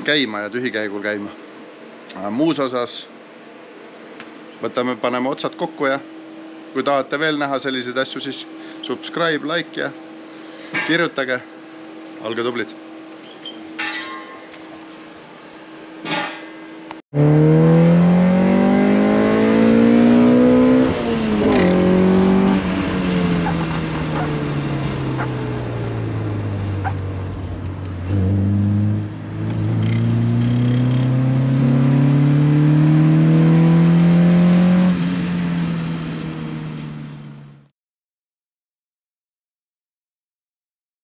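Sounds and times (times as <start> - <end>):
car engine revving in cabin: 17.2 - 37.6.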